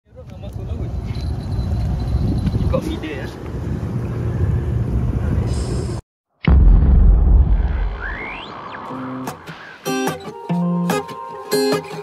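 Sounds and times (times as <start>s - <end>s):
wind buffeting microphone: 0.2s - 6.0s.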